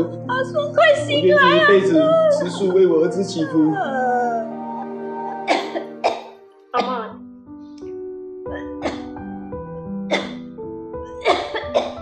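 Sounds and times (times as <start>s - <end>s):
soft background music: 0.0s - 12.0s
woman coughing: 5.5s - 7.1s, 8.5s - 9.2s, 11.2s - 12.0s.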